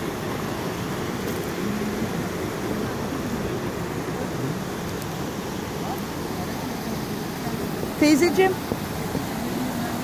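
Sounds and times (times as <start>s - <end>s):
stream rushing over rocks: 0.0s - 10.0s.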